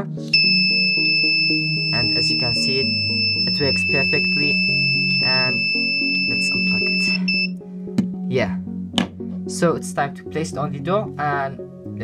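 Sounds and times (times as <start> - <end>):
background music: 0.0 - 12.0
high-pitched electronic buzzer: 0.4 - 7.6.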